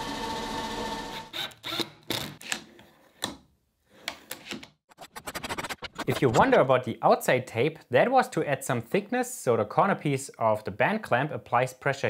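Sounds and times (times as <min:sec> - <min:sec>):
power drill running: 0:00.0 - 0:01.9.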